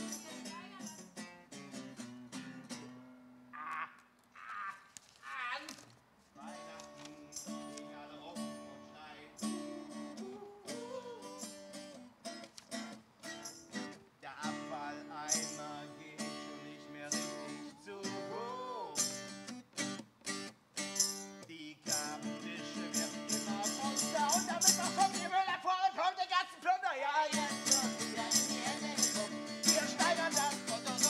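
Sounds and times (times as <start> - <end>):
acoustic guitar strumming: 0.0 - 3.5, 6.4 - 31.0
person singing: 6.4 - 11.6, 14.4 - 19.2, 21.8 - 31.0.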